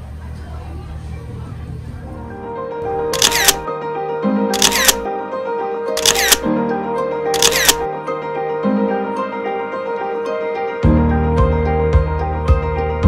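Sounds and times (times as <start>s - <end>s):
background music: 2.2s - 13.0s
camera shutter double clicks: 3.2s - 3.7s, 4.6s - 5.1s, 6.0s - 6.5s, 7.4s - 7.9s.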